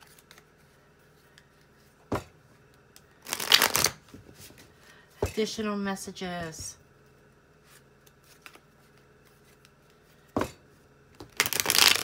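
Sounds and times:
cards riffle shuffling: 3.3 - 4.0, 11.4 - 12.0.

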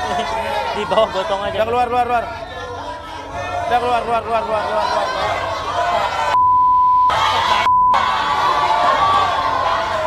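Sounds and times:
studio crowd shouting: 0.0 - 6.4, 7.1 - 10.0
censor bleep: 6.4 - 8.1.

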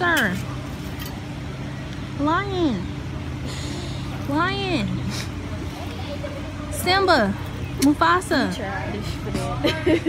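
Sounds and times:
faint voices: 0.0 - 10.0
low engine hum: 0.0 - 10.0.

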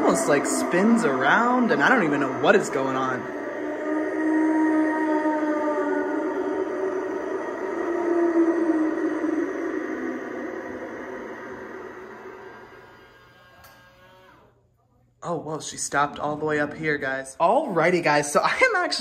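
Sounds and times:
eerie music-like sound from speaker: 0.0 - 14.3.

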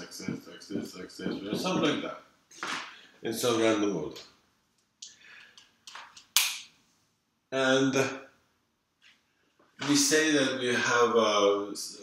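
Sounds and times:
sharp snap: 5.0 - 6.8.

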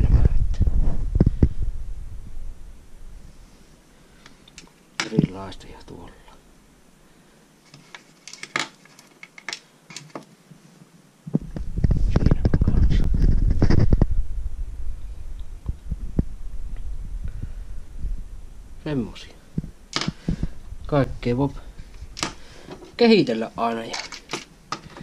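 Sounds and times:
handling noise on microphone: 0.0 - 1.7, 11.3 - 18.3, 18.9 - 25.0
rumble and rustle with small knocks: 0.0 - 6.4, 7.6 - 25.0
person speaking: 5.0 - 6.4, 18.8 - 19.6, 20.2 - 21.9, 22.6 - 24.3.

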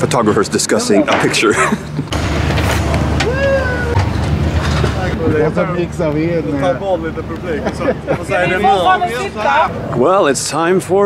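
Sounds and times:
person laughing: 1.4 - 2.1, 7.6 - 8.5
rising voice-like sound: 3.1 - 4.0.

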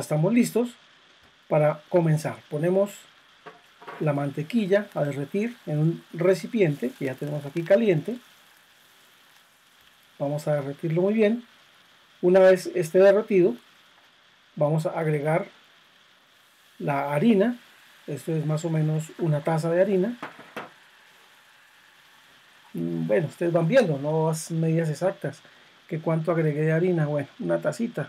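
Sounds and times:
butter sizzling in saucepan: 0.1 - 28.0.

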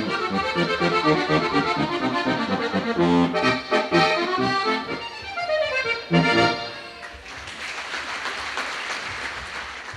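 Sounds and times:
accordion chord: 0.0 - 7.2
audience applause: 7.1 - 9.9.

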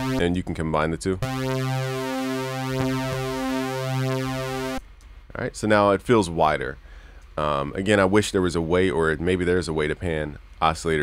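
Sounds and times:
sustained low synthesizer note: 1.2 - 4.8.

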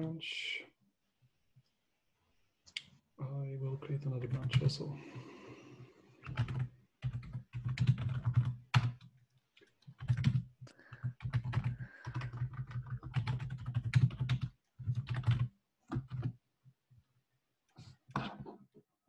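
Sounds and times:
typing on computer keyboard: 4.3 - 4.7, 6.2 - 16.4.

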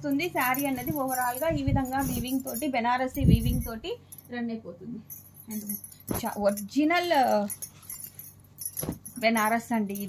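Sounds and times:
glass bangles clinking: 0.0 - 4.3, 5.0 - 10.0
fabric rustling: 0.5 - 3.8, 5.6 - 10.0.

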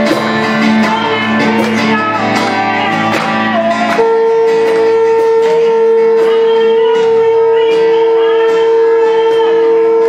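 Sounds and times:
person singing: 0.0 - 10.0
steady high held tone: 0.0 - 10.0
strummed acoustic guitar: 0.0 - 10.0.

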